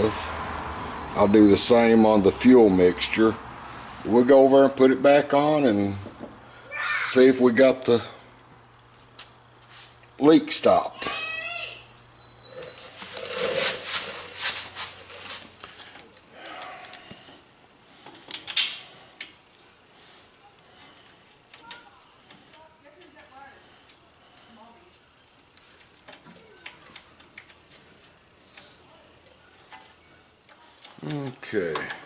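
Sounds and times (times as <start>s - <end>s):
cricket trill: 0.0s - 32.0s.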